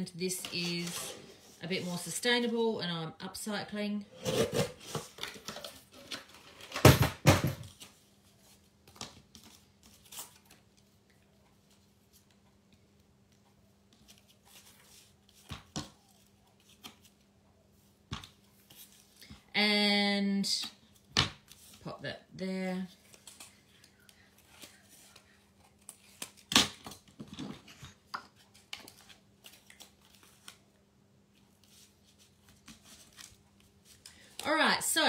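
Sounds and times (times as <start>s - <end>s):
paper and card handled: 14.0s - 19.4s, 22.9s - 30.7s.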